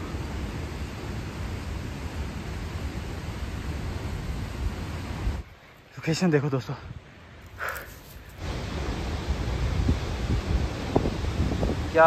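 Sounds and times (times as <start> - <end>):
wind blowing across microphone: 0.0 - 5.6, 7.9 - 12.0.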